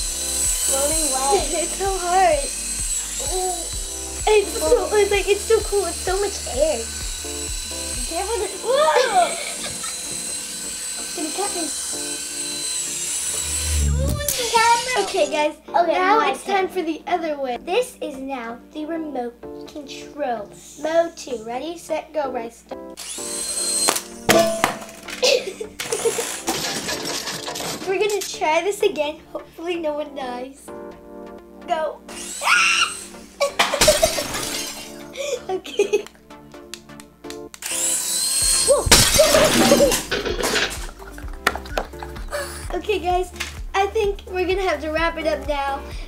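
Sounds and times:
toy drone rotors whining: 0.0s - 15.3s, 23.0s - 24.1s, 25.0s - 28.2s, 32.1s - 35.4s, 37.6s - 42.8s
background music: 0.0s - 46.0s
child's voice: 0.6s - 2.5s, 3.2s - 6.9s, 8.0s - 9.6s, 11.1s - 11.8s, 14.0s - 22.7s, 27.8s - 30.8s, 31.7s - 32.1s, 35.2s - 36.0s, 38.6s - 38.9s, 42.3s - 46.0s
shattering crash: 26.4s - 27.9s, 33.6s - 34.9s, 38.9s - 40.8s.

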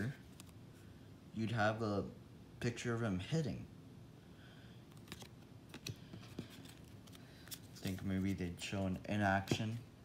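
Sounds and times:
trading cards clicking and tapping: 9.4s - 9.8s.

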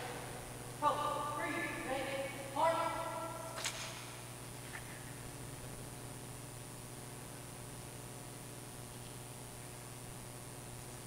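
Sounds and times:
person calling drill commands: 0.8s - 3.3s
sharp click: 3.6s - 4.9s.

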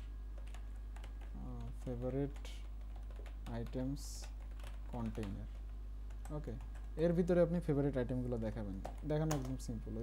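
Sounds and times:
steady low hum: 0.0s - 10.0s
keyboard key clicks: 8.8s - 9.6s.

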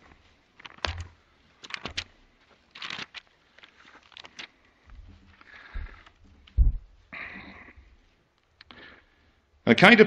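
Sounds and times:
paper rustle: 0.5s - 6.5s
thump on microphone: 6.6s - 6.9s.

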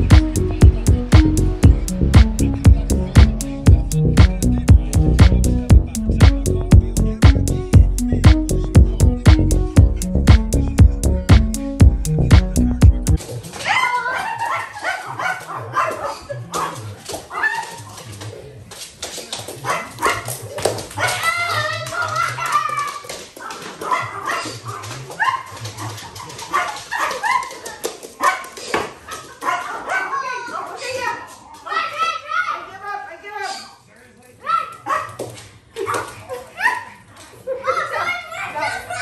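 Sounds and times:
dogs barking and yipping: 13.5s - 18.1s, 19.6s - 32.6s, 34.5s - 39.0s.

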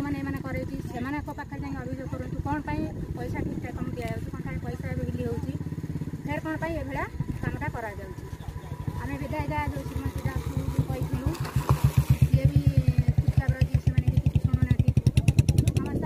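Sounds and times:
woman speaking: 0.0s - 8.3s, 8.9s - 11.5s, 12.1s - 16.0s
motorcycle engine running: 0.0s - 16.0s.

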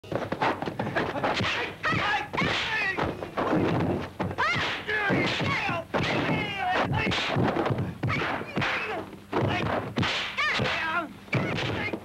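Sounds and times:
punch and kick impacts: 0.1s - 12.0s.

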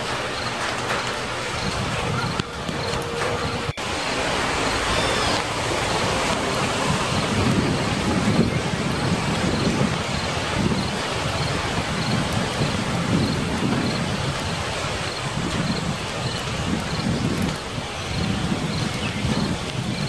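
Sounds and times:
heavy rain: 0.0s - 20.0s
thunder rolling: 0.0s - 20.0s.

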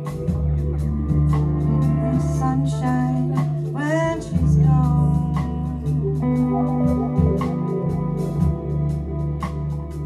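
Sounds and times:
drums with cymbal strokes: 0.0s - 10.0s
electric bass: 0.0s - 10.0s
live jazz band playing: 0.0s - 10.0s.

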